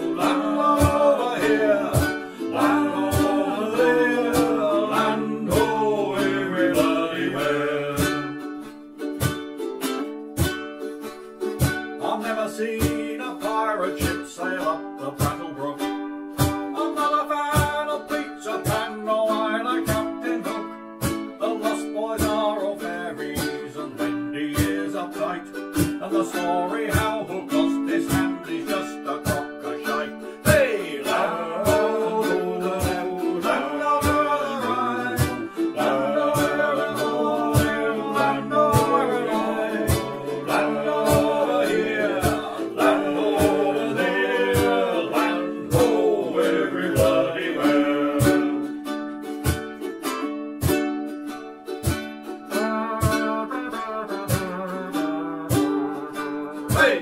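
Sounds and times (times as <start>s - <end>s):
ukulele strumming: 0.0s - 57.0s.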